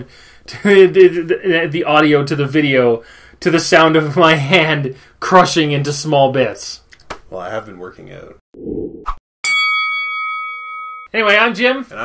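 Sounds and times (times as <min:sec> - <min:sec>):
bright metallic chime ding: 0:09.4 - 0:11.1.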